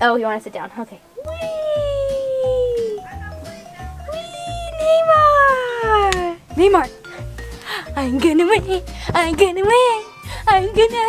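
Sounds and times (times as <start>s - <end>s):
girl shouting wheee: 1.2s - 3.0s, 4.1s - 6.4s.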